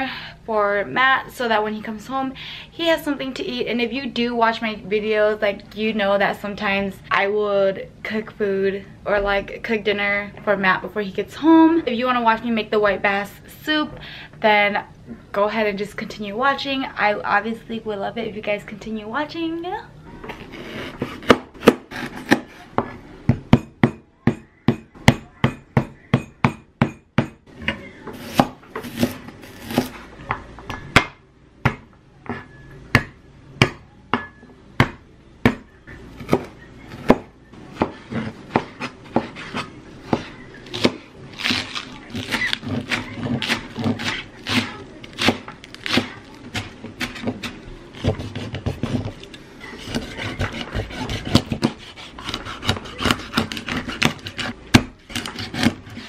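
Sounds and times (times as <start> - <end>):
cleaver scraping board: 20.3 - 23.0, 37.7 - 56.0
cleaver sawing through fish: 49.7 - 56.0.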